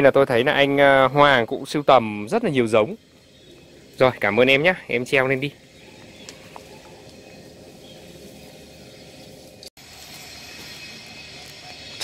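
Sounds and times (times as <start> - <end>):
low hum: 1.3 - 12.0.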